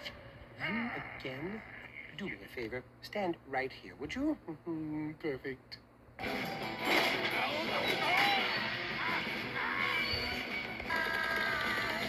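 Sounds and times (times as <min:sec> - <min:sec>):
cartoon music through tv speaker: 0:06.2 - 0:12.0
cartoon sound effects: 0:06.9 - 0:10.2.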